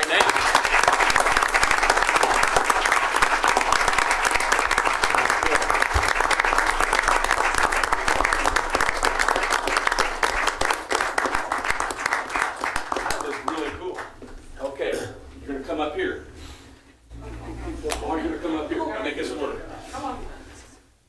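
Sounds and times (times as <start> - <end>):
audience applauding: 0.0 - 14.2.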